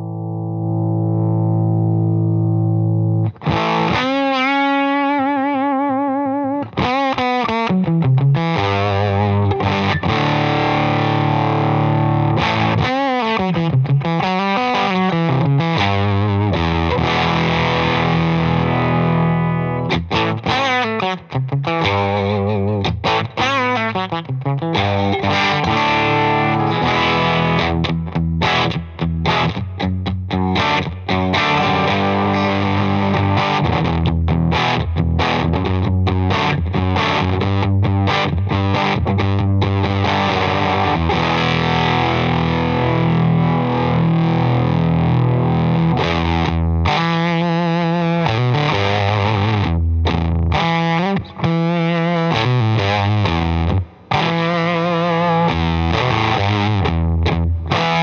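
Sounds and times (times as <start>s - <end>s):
fuzzed electric guitar: 0.0s - 58.0s.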